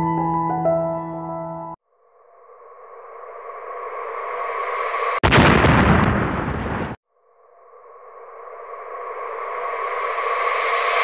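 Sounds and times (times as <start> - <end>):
firework bang: 5.2 - 7.0
synth pad: 7.3 - 11.0.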